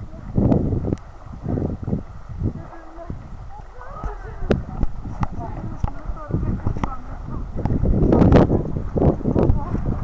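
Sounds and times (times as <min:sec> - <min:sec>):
water sloshing: 0:00.0 - 0:10.0
faint indistinct voices: 0:02.5 - 0:10.0.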